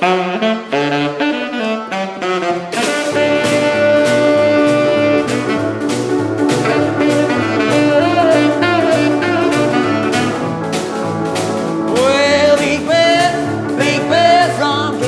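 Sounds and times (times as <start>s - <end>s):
saxophone lead: 0.0s - 15.0s
snare drum beat: 2.7s - 15.0s
upright piano bass figure: 2.8s - 15.0s.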